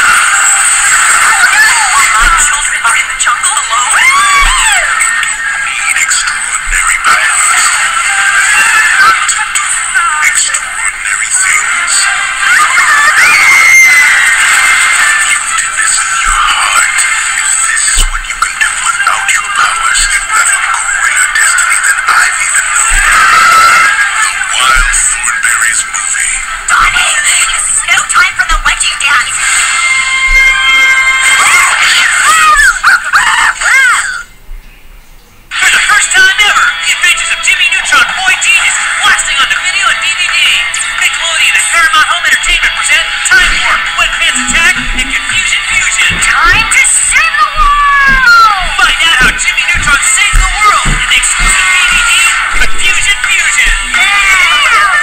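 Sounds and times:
tinny music from television: 0.0s - 55.0s
cartoon screams and squeals: 3.6s - 5.6s, 12.3s - 16.8s, 22.9s - 24.0s, 29.4s - 34.4s, 47.2s - 48.6s, 54.0s - 55.0s.

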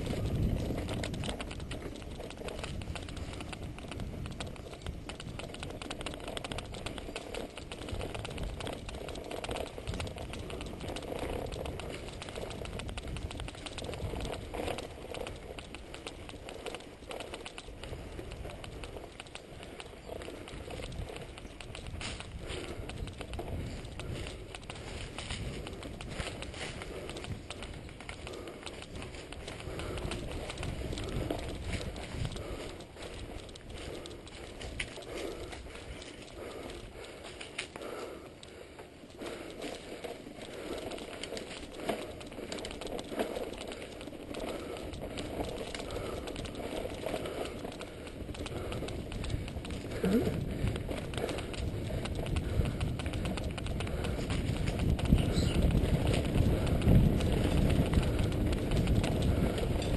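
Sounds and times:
bike tyres on dirt: 0.0s - 59.9s
wind on microphone: 0.0s - 59.9s.

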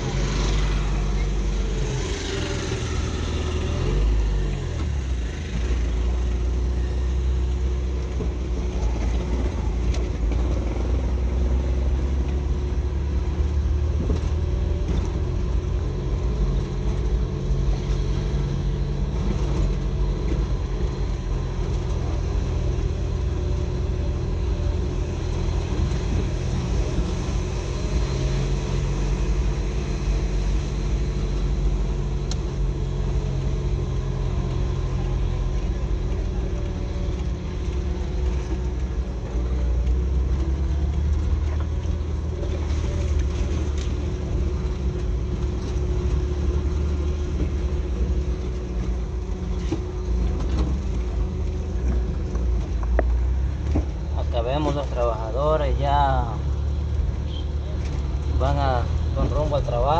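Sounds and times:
car engine running: 0.0s - 59.9s
road noise: 0.0s - 59.9s.

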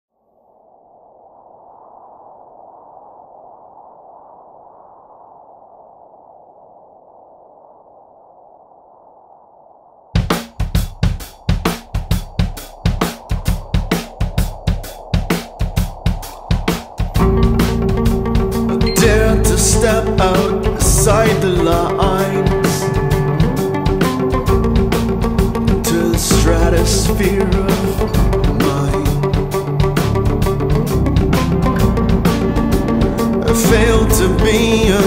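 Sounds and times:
soft muffled wash of noise: 0.2s - 28.1s
drum kit playing driving beat: 10.2s - 35.0s.

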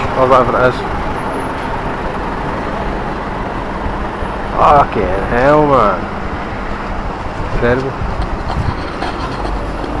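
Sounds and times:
city street traffic hum: 0.0s - 10.0s.

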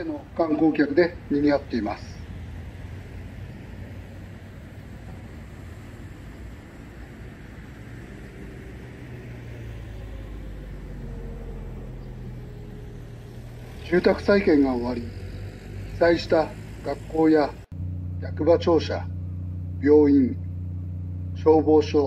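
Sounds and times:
car engine passing: 0.0s - 22.0s
distant traffic rumble: 0.0s - 22.0s.

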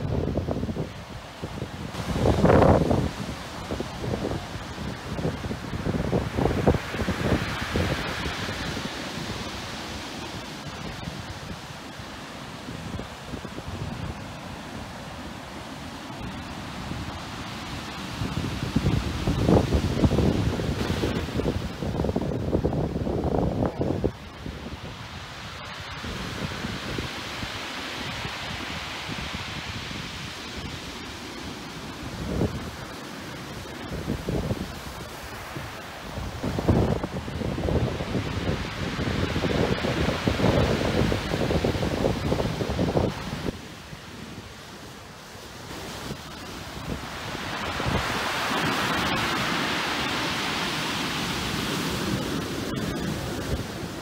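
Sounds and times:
sea surf breaking: 0.0s - 54.0s
white water washing up beach: 0.0s - 54.0s
wind gusting on microphone: 0.0s - 54.0s.

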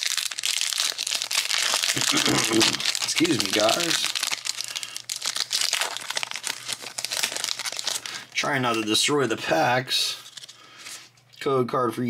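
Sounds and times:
foil wrapper crinkling and tearing: 0.0s - 9.0s.

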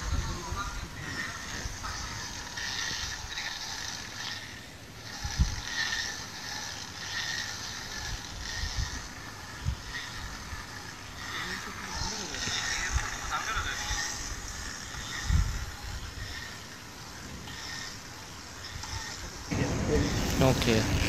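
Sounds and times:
hand crank whirring and ratcheting: 0.0s - 21.0s.

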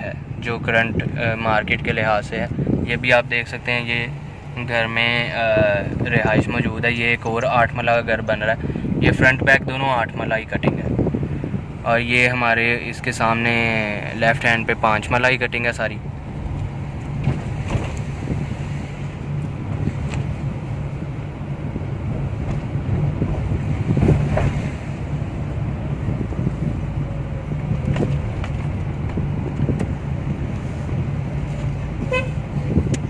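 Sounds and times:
engine and tyre rumble: 0.0s - 33.0s
high-pitched car horn toot: 32.0s - 32.4s.

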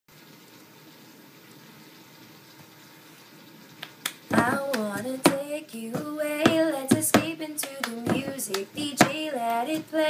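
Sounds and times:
faint room tone hiss: 0.1s - 10.0s.

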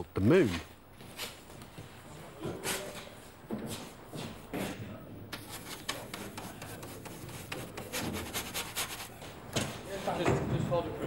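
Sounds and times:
paintbrush bristles scrubbing: 5.4s - 9.2s.

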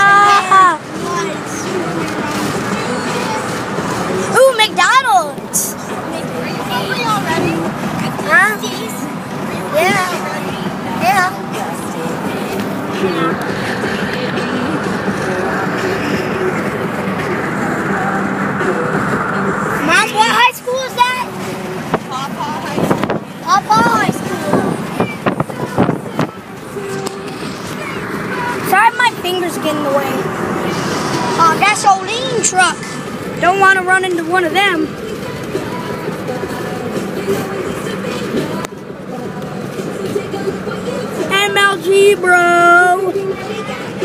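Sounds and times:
voice: 0.0s - 16.5s, 19.8s - 34.9s, 41.2s - 43.9s
car road noise: 0.0s - 44.0s
music from car stereo: 0.0s - 44.0s.

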